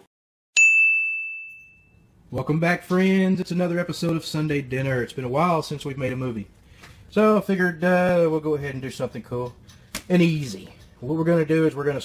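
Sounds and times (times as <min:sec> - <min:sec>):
high bell-like ding: 0:00.6 - 0:02.2.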